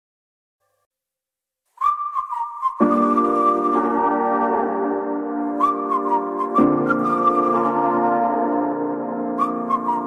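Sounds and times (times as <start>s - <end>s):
high whistled melody: 1.8s - 10.0s.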